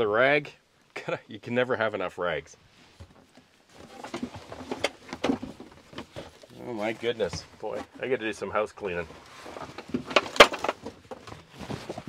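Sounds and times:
rummaging through gear: 2.9 - 8.2, 8.9 - 12.0.

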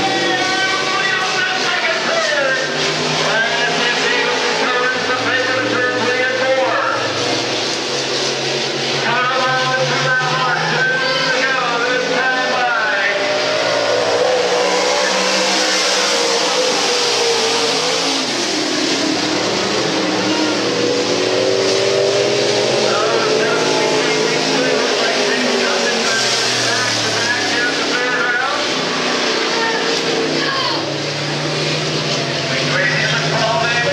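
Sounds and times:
race car engines revving: 0.0 - 33.9.

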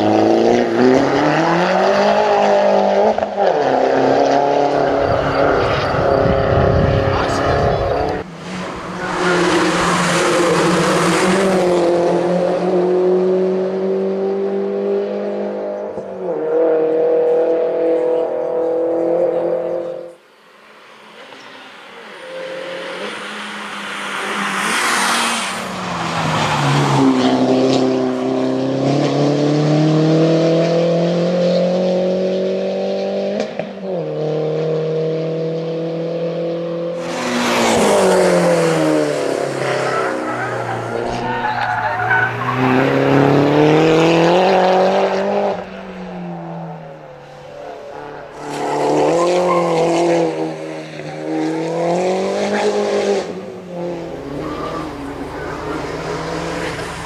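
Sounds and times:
race car engine pulling hard: 0.0 - 20.2, 20.8 - 57.0.

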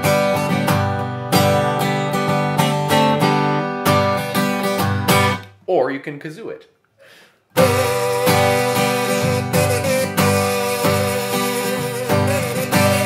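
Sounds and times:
strummed acoustic guitar: 0.0 - 5.5, 7.5 - 13.0
kazoo buzzing a melody: 7.6 - 13.0.

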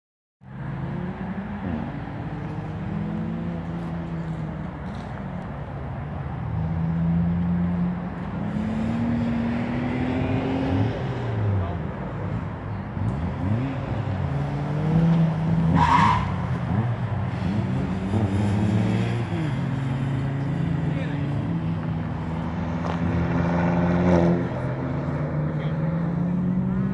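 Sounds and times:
racing car engines: 0.4 - 26.9.

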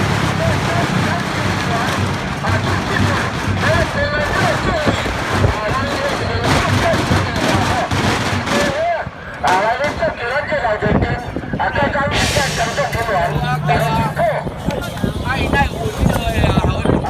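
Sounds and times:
firecrackers banging: 0.0 - 10.3, 11.9 - 17.0
crowd talking and calling out: 0.0 - 17.0.

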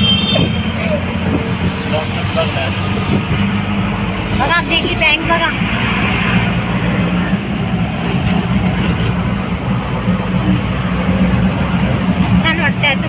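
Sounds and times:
auto-rickshaw engine running: 0.0 - 13.0
road and wind noise: 0.0 - 13.0.

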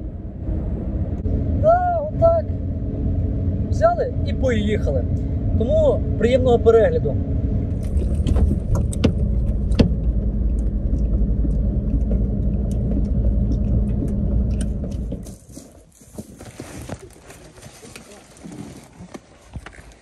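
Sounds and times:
van cabin rumble: 0.0 - 20.0
knocks and rattles from bumps: 7.9 - 17.0.

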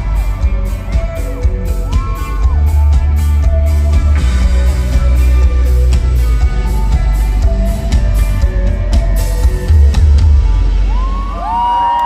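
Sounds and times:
crowd cheering and whooping: 0.0 - 5.4, 9.5 - 12.0.

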